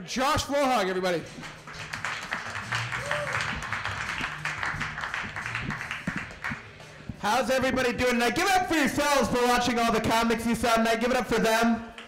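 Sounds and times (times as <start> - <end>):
audience applauding: 1.3 - 7.2
walk-on music with bass line: 1.3 - 9.0.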